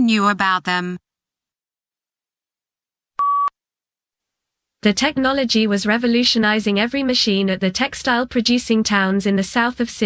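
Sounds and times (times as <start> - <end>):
person reading aloud: 0.0 - 1.0.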